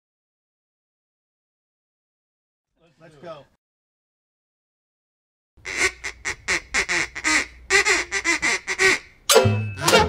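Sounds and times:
goose call honking: 5.6 - 9.1.

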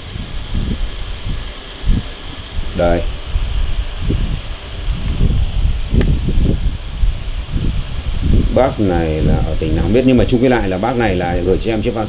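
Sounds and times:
microphone handling rustling: 0.0 - 10.4.

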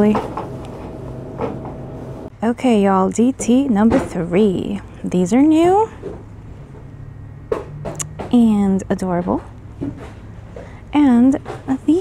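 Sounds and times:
woman speaking: 0.0 - 0.3, 2.4 - 6.0, 8.2 - 9.5, 10.9 - 12.0
faint steady hum: 0.0 - 12.0
soft clunks: 7.5 - 8.5.

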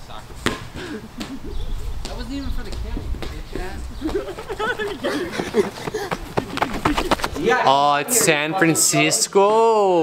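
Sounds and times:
distant voices: 0.1 - 9.3.

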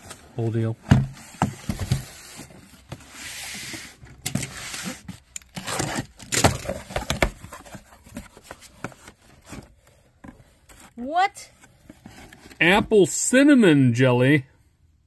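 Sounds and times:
cardboard rustling: 0.0 - 12.8.

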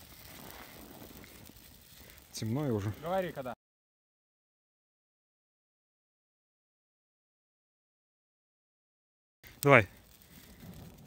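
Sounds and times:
dry reeds burning and crackling: 0.0 - 3.6, 9.4 - 11.0
small fire pops: 0.0 - 3.6, 9.4 - 11.0.

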